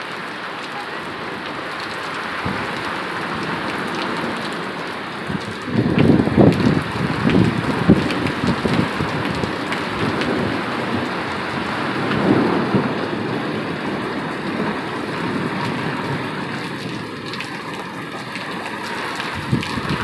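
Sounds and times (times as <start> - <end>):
heavy rain pouring: 0.0 - 20.0
thunder rumbling: 1.1 - 20.0.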